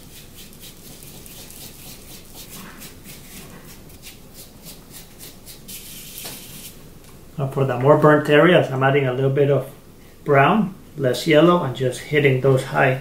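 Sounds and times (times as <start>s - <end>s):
foam brush rubbing mask: 0.0s - 6.8s.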